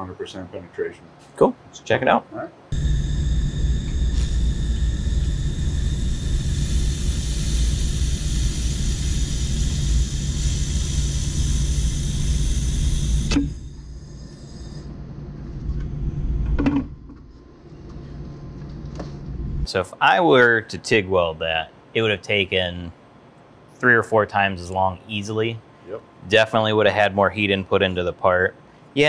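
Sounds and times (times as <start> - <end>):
laser welder hissing: 2.7 - 14.9.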